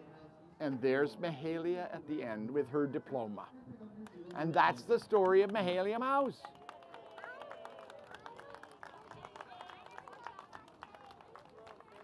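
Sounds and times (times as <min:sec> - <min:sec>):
background chatter of children: 0:02.2 - 0:04.9, 0:07.0 - 0:12.0.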